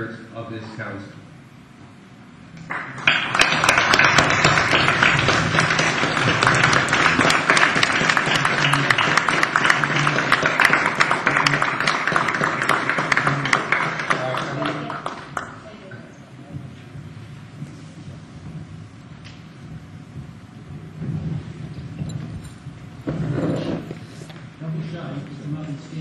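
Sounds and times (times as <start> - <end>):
audience applauding: 2.7 - 15.7.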